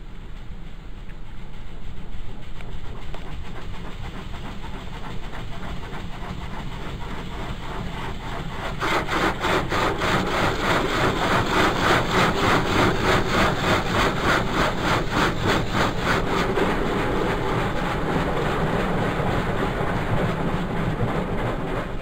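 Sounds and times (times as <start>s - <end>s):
car wash swishing and scrubbing: 0.0s - 22.0s.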